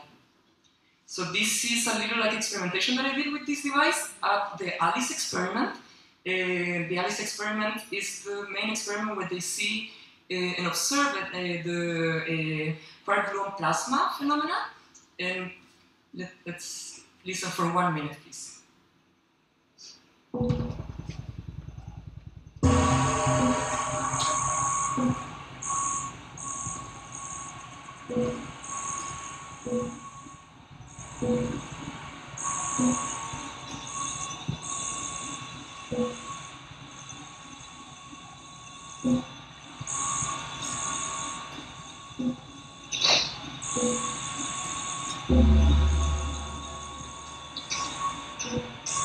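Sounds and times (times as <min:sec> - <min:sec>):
low electronic blips and clicks: 0:20.4 - 0:30.4, 0:31.0 - 0:36.4, 0:39.0 - 0:40.0, 0:41.5 - 0:44.2, 0:45.0 - 0:49.0
steady mid-pitched tone: 0:20.4 - 0:43.0, 0:43.6 - 0:49.0
high shrill electronic tone: 0:22.6 - 0:31.7, 0:32.4 - 0:49.0.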